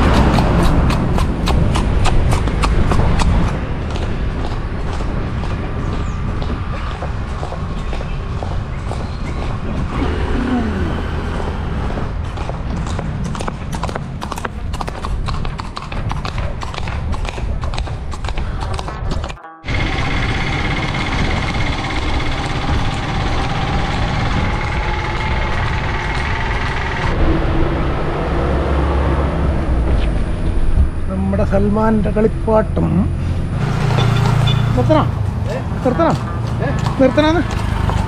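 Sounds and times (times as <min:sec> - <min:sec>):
horse hooves on paved road: 0:00.0 - 0:27.2, 0:33.8 - 0:38.0
wind rumble on microphone: 0:00.0 - 0:33.8
road noise: 0:00.0 - 0:38.0.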